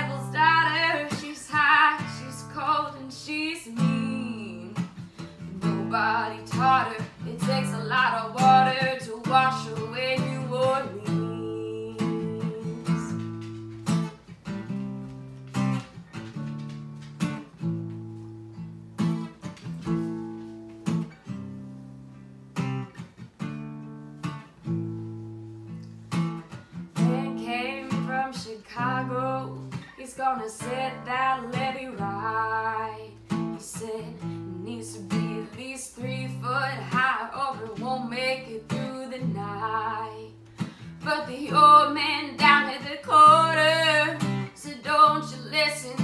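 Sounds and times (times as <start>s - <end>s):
woman singing: 0.0s - 13.4s, 27.0s - 46.0s
acoustic guitar strumming: 0.0s - 46.0s.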